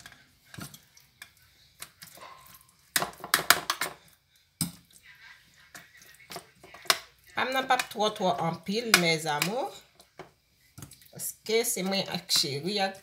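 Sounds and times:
spoon scraping metal baking tray: 0:05.8 - 0:09.9, 0:11.2 - 0:13.0.

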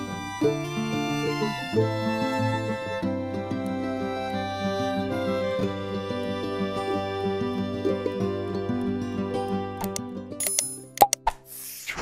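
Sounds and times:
background music: 0:00.0 - 0:11.6
pop and click sound effects: 0:09.8 - 0:12.0.

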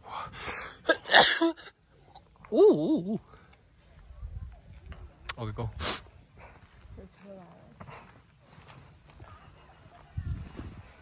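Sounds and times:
faint voices: 0:02.0 - 0:11.0
footsteps on concrete: 0:06.4 - 0:11.0.

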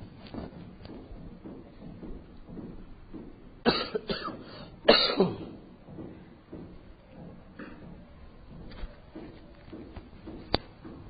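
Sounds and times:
man coughing: 0:03.6 - 0:05.5.

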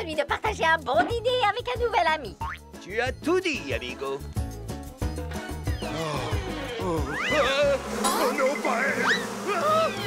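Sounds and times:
background music: 0:00.0 - 0:10.0
cartoon animal yowls: 0:05.8 - 0:07.5.

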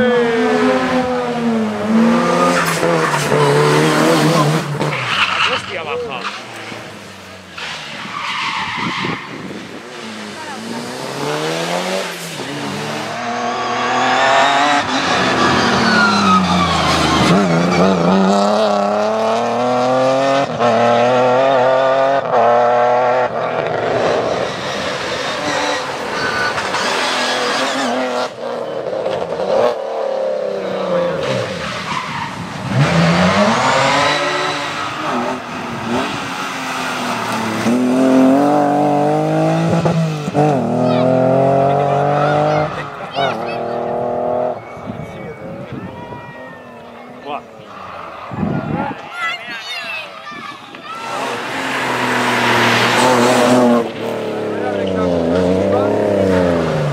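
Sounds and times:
rally car engines at full throttle: 0:00.0 - 0:56.9
car sweeping past: 0:51.0 - 0:56.9.

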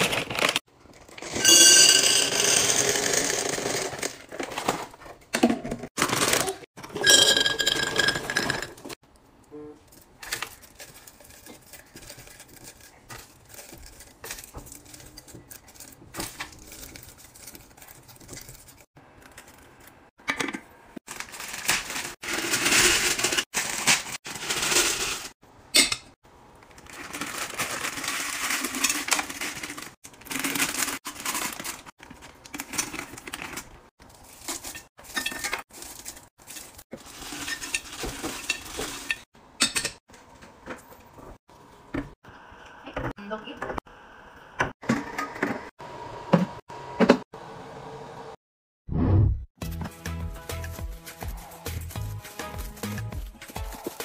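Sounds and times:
candies clinking on glass: 0:01.3 - 0:03.0, 0:06.4 - 0:08.7
plastic bags rustling: 0:10.0 - 0:18.9, 0:21.1 - 0:25.4, 0:26.6 - 0:39.2.

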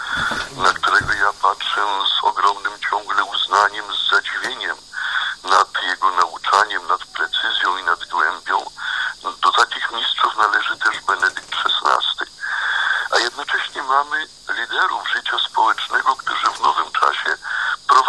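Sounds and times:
radio speech: 0:00.0 - 0:18.0.

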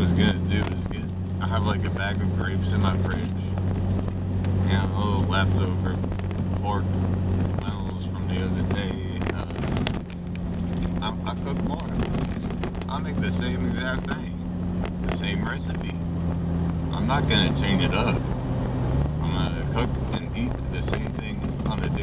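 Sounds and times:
car engine droning: 0:00.0 - 0:22.0
road noise: 0:00.0 - 0:22.0.

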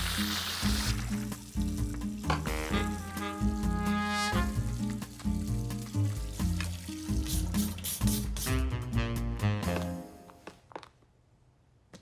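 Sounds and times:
background music: 0:00.0 - 0:10.5.

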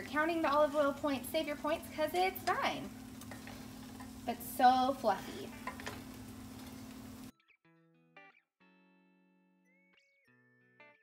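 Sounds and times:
spatula stirring in steel pot: 0:01.9 - 0:07.2.

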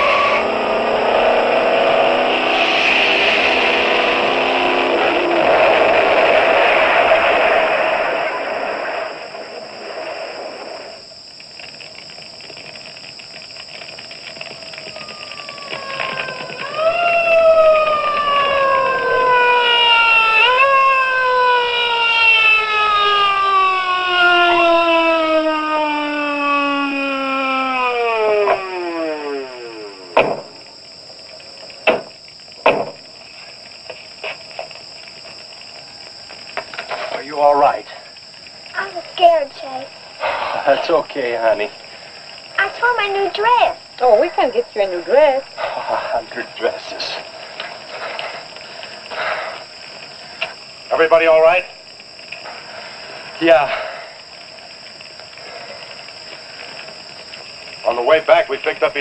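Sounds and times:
long wail sliding in pitch: 0:00.0 - 0:11.0, 0:14.4 - 0:30.6
loud engine and explosion: 0:00.0 - 0:11.1, 0:14.3 - 0:33.1.

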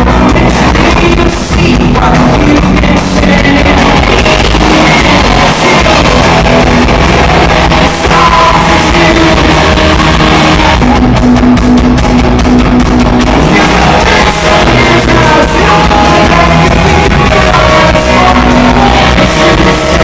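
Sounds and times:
drums: 0:00.0 - 0:20.0
electric guitars: 0:00.0 - 0:20.0.

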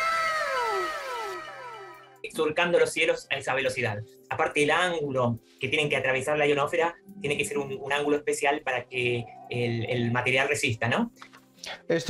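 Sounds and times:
synthesized tones sliding downward: 0:00.0 - 0:02.3.

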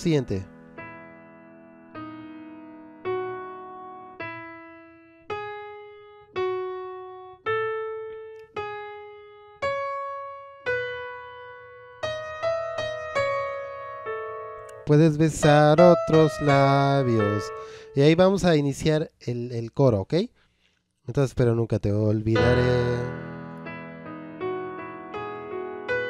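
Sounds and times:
piano melody: 0:00.0 - 0:18.6, 0:22.2 - 0:26.0.

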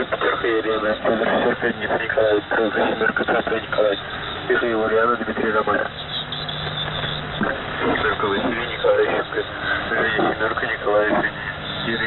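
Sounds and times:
garbled radio speech: 0:00.0 - 0:12.0
low steady hum: 0:00.0 - 0:12.0
radio static: 0:00.0 - 0:12.0.

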